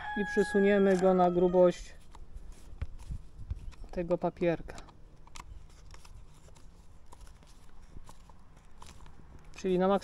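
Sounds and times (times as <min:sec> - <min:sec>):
faint clicks and handling noises: 0:00.8 - 0:10.0.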